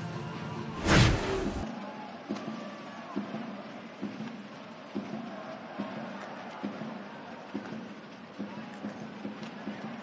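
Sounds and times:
ice hockey arena sound: 0:00.0 - 0:10.0
whoosh transition effect: 0:00.8 - 0:01.6.

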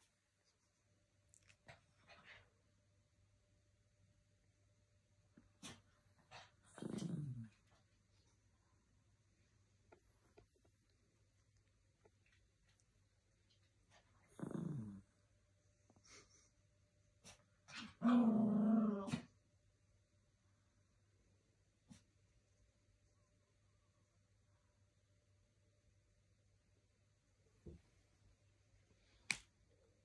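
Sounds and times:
small dog growling: 0:05.6 - 0:07.9, 0:13.9 - 0:15.2, 0:17.2 - 0:19.4.

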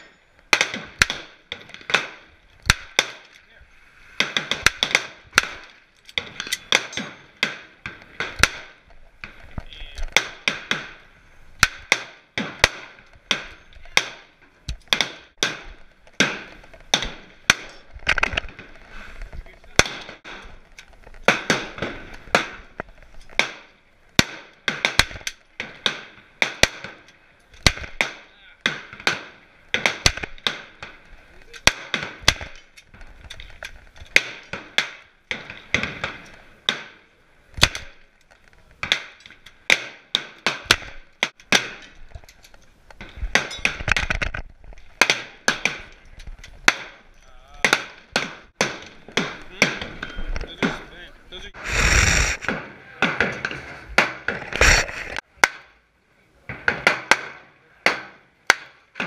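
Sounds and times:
gunfire cracks: 0:04.2 - 0:08.8.

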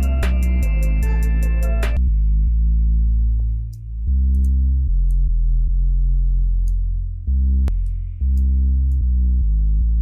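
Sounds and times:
deep synth bass line: 0:00.0 - 0:10.0.

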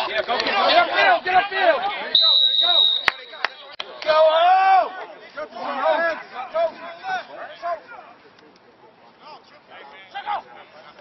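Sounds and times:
referee's whistle: 0:02.1 - 0:03.8.

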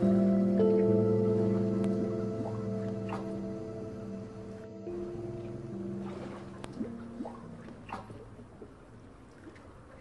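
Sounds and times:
ambient synthesizer music: 0:00.0 - 0:10.0
water lapping and splashing: 0:01.9 - 0:03.5, 0:04.6 - 0:10.0.

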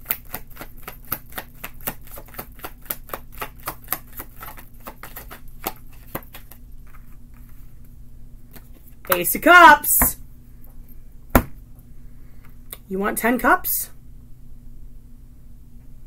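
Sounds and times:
cards shuffling: 0:00.0 - 0:07.6.

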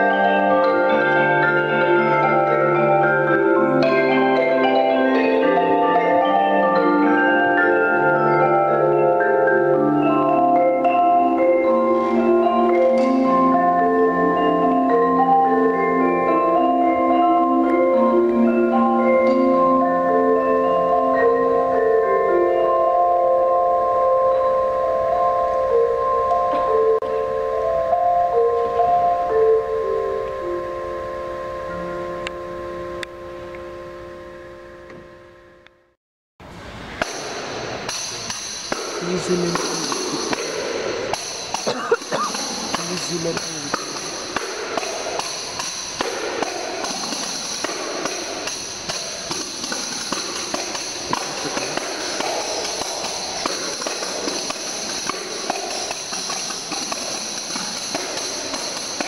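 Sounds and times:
mallet percussion chord ringing: 0:00.0 - 0:35.7, 0:37.2 - 0:59.0
taps on tambourine heads: 0:37.0 - 0:59.0
tambourines jingling: 0:37.9 - 0:59.0.

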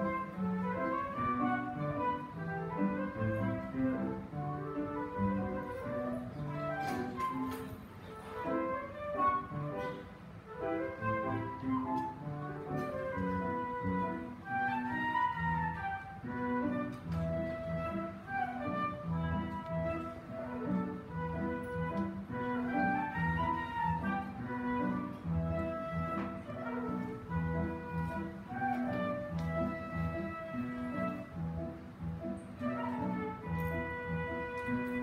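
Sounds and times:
grand piano chords: 0:00.0 - 0:35.0
solo melody instrument: 0:00.0 - 0:35.0.

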